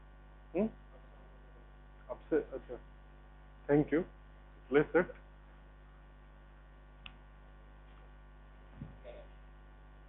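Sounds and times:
electrical mains hum: 0:00.0 - 0:10.0.

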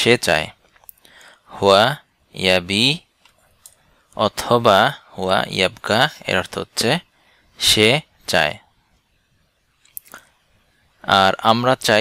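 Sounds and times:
mouth click and lip smack: 0:09.8 - 0:10.4.

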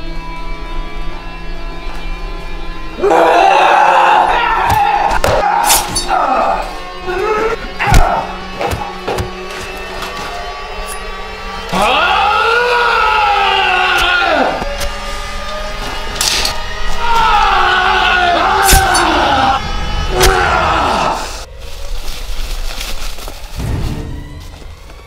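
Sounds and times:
background music: 0:00.0 - 0:25.0
men yelling and grunting: 0:03.0 - 0:09.4, 0:11.6 - 0:14.9, 0:15.9 - 0:21.5.

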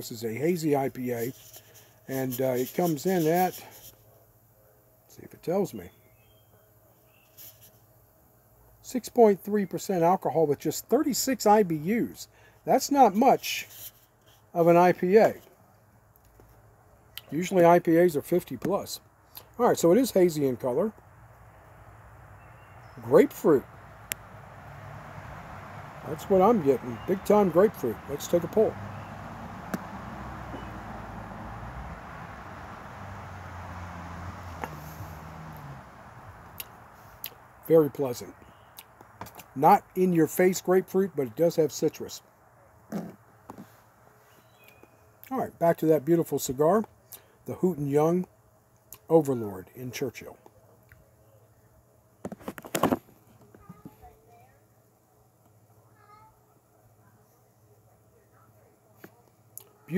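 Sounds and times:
distant engine humming: 0:20.3 - 0:37.7
faint wavering calls: 0:25.4 - 0:37.1
man puffing on a cigar: 0:34.5 - 0:35.8.

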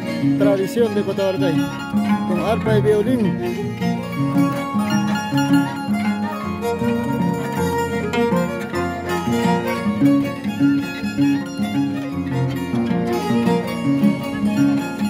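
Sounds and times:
harp plucking bass notes: 0:00.0 - 0:15.0
violin melody: 0:00.0 - 0:15.0.

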